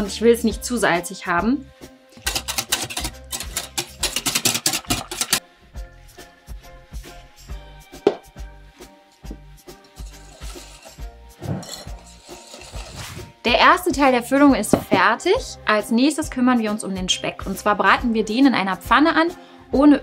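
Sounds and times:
background music with steady beat: 0.0 - 20.0
wire whisk beating in glass bowl: 2.2 - 5.4.

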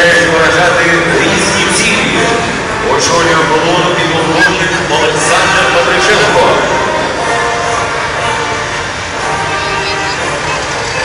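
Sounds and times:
crowd voices: 0.0 - 11.0
military trucks driving past: 0.0 - 11.0.

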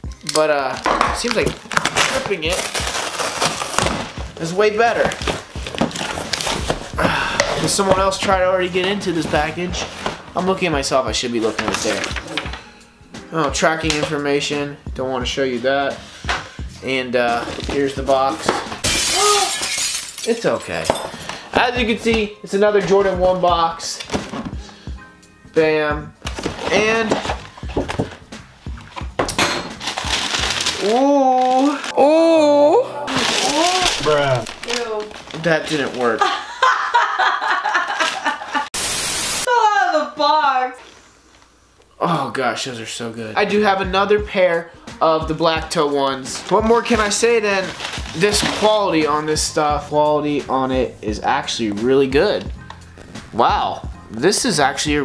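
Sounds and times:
backing track with kick drum: 0.8 - 1.6, 6.6 - 8.7
paper rustling: 1.2 - 4.2, 4.9 - 8.2, 11.4 - 12.4, 26.2 - 28.2, 29.8 - 32.0, 33.1 - 36.3, 37.7 - 38.7, 46.3 - 49.2
cardboard box tearing: 1.5 - 4.2, 33.1 - 36.0
cardboard box being opened: 26.3 - 28.1, 33.1 - 36.0.

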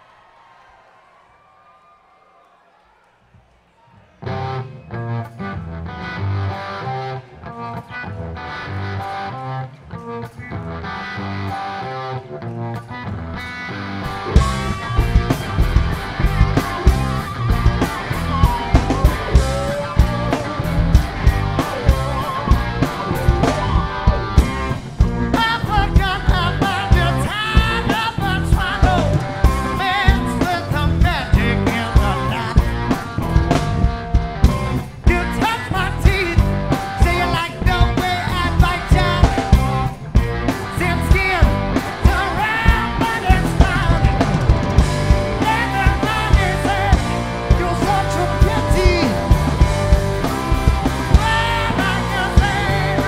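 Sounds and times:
guitar intro: 4.2 - 53.0
rock band playing live: 4.2 - 53.0
drum kit: 13.9 - 53.0.

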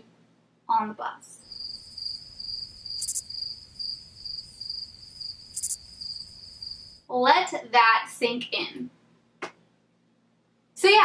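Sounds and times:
cricket chirping: 1.4 - 7.0.

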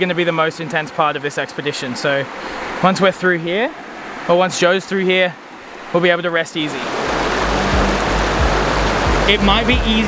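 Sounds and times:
river rushing: 0.0 - 10.0
background music with pulsing bass: 7.3 - 10.0.

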